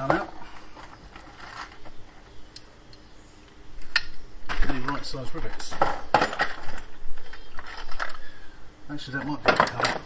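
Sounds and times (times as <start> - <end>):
metal rivets rattling in a box: 4.9 - 8.2.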